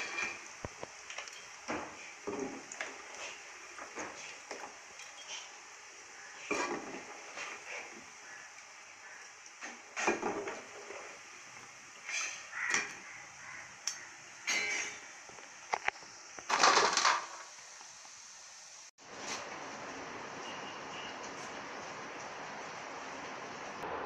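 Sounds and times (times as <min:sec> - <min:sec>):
steel ladle scraping and clinking: 0:00.0 - 0:00.5, 0:14.5 - 0:15.1
chicken frying in hot oil: 0:00.0 - 0:24.0.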